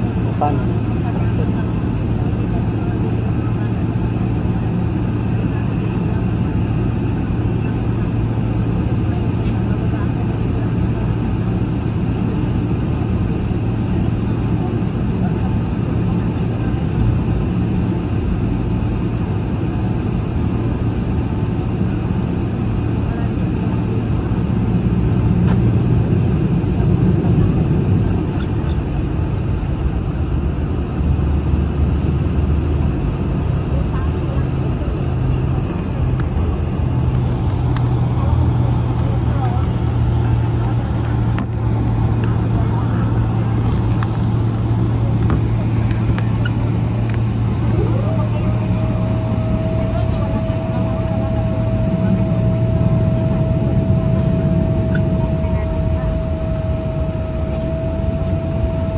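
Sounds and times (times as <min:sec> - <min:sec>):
low rumble of jet engines: 0:00.0 - 0:58.9
rising engine whine: 0:00.0 - 0:58.9.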